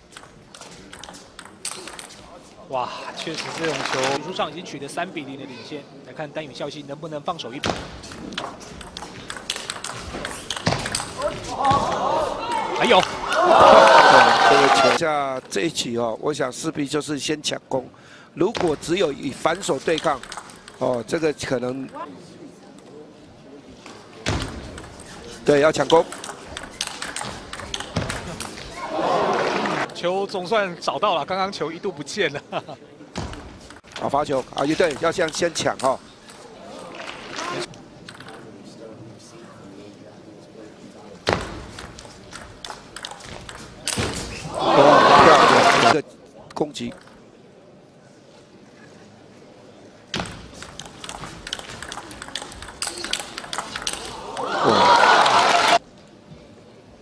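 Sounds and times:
table tennis ball clicks: 0.1s - 2.2s, 8.1s - 11.3s, 19.9s - 21.0s, 25.8s - 28.6s, 50.2s - 54.5s
people shouting and cheering: 11.2s - 15.0s, 28.7s - 29.9s, 44.3s - 46.0s, 53.9s - 55.8s
crowd murmuring: 44.4s - 46.0s, 51.1s - 55.8s.

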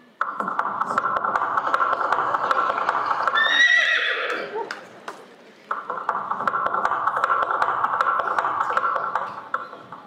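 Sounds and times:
horse neigh: 3.4s - 4.5s.

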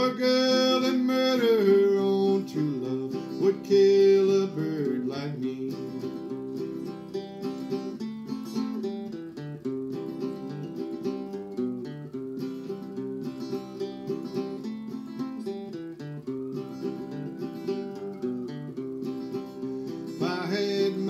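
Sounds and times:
acoustic guitar picking and strumming: 0.0s - 21.0s.

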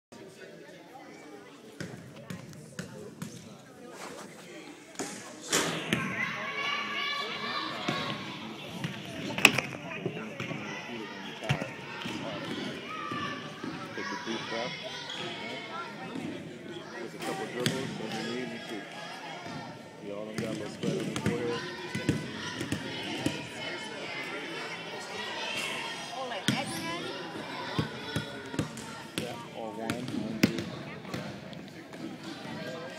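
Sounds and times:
voices chattering: 0.1s - 32.9s.

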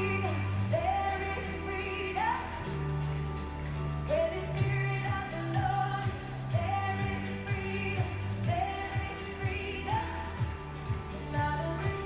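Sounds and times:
upbeat song with sung melody: 0.0s - 12.0s.

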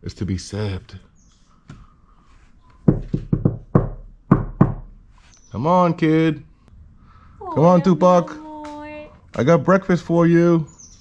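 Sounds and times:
short knocks with dull thuds: 2.8s - 5.0s.

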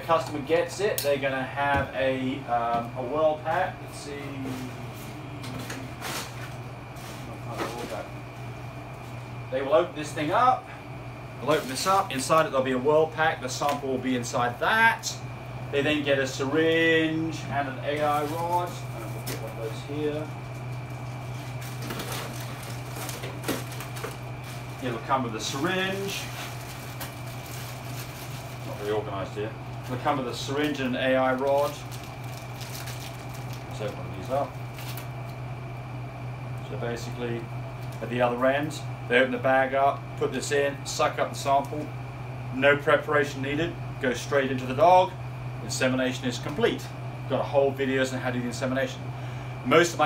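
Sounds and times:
steady low hum: 0.0s - 50.0s
plastic bag rustling: 11.4s - 12.2s, 17.9s - 35.1s
items rummaged and handled: 17.9s - 35.1s.

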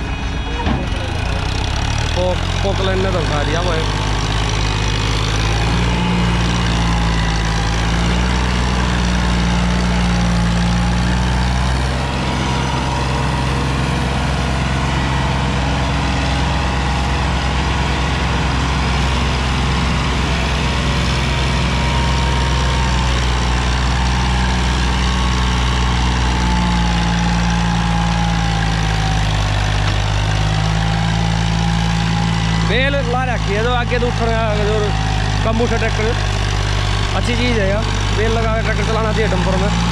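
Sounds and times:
tractor diesel engine under load: 0.0s - 39.9s.

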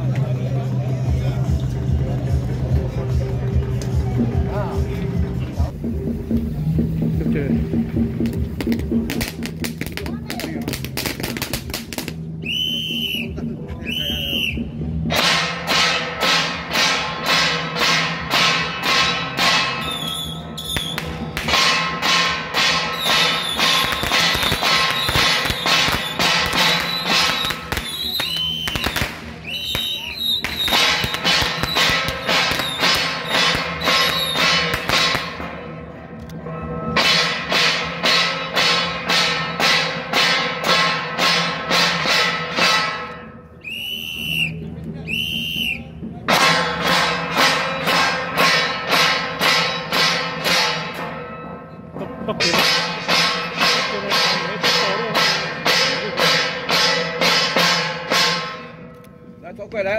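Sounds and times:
hand cymbals clashing: 15.1s - 44.1s, 46.3s - 59.5s.

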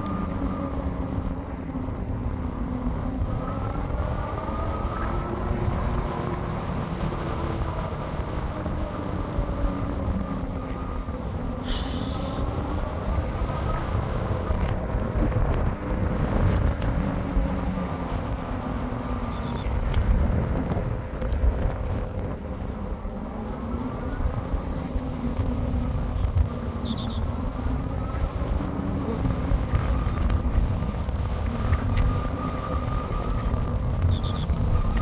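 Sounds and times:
tyres on road: 0.0s - 35.0s
wind rumble on microphone: 0.0s - 35.0s.

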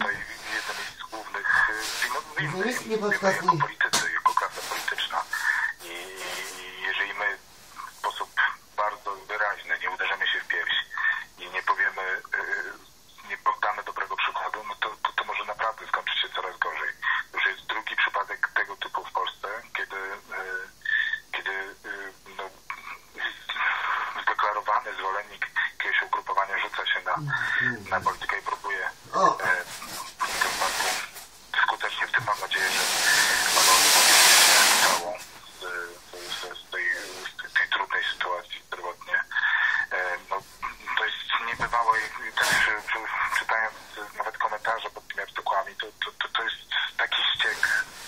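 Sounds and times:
speech over a telephone line: 0.0s - 33.9s, 34.8s - 47.9s.

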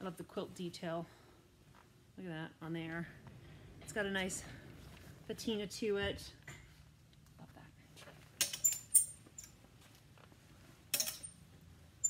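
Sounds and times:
metal hangers clinking on rail: 8.4s - 9.6s, 10.9s - 11.4s.

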